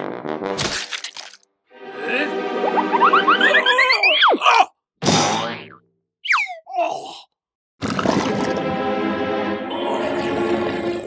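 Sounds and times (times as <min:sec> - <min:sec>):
cartoon rising boings: 0:02.6 - 0:04.4.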